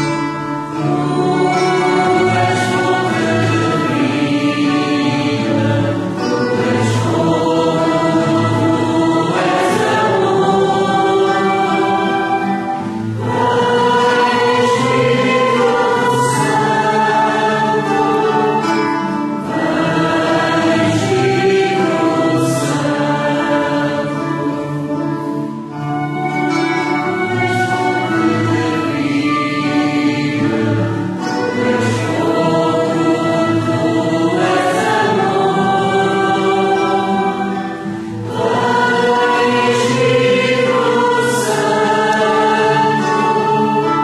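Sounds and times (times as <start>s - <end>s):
choir singing a hymn: 0.0s - 44.0s.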